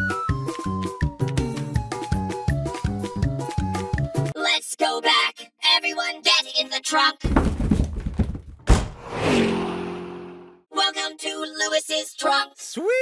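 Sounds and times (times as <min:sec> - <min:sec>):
low heavy thud: 0:07.2 - 0:09.0.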